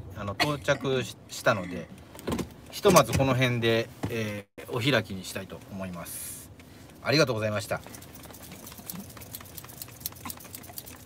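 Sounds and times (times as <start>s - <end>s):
light clicks and ticks: 5.4s - 11.0s.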